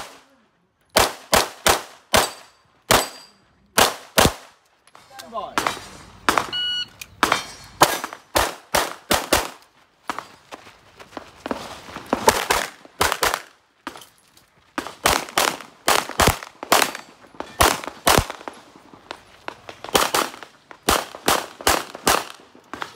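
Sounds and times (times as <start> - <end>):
pistol firing rapid shots: 1.0 - 3.1, 3.8 - 4.5, 7.8 - 9.6, 15.0 - 17.0, 17.6 - 18.5, 19.9 - 22.4
short electronic beep: 6.5 - 7.0.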